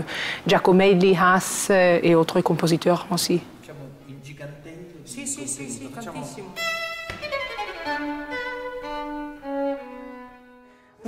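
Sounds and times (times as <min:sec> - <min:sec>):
bowed strings holding notes: 0:06.5 - 0:10.8.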